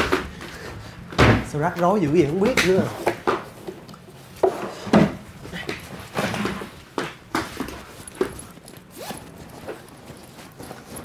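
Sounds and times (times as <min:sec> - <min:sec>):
fabric backpack rustling: 0:07.5 - 0:11.0.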